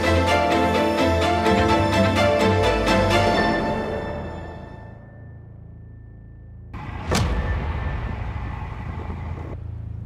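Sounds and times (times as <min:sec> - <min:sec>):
wind and road noise: 0:06.7 - 0:10.0.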